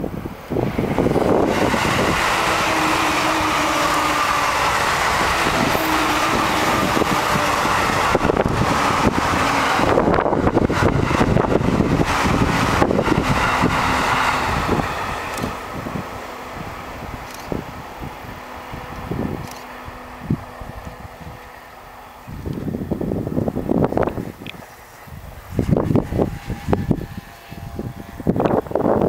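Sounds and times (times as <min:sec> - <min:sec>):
train motor hum: 0:00.0 - 0:29.0
train wheels rolling on rail: 0:00.0 - 0:29.0
wind buffeting microphone: 0:00.0 - 0:29.0.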